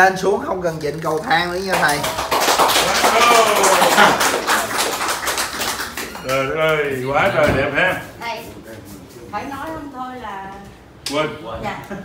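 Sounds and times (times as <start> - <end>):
group clapping rapidly: 1.3 - 7.0
excited voices: 2.8 - 4.8.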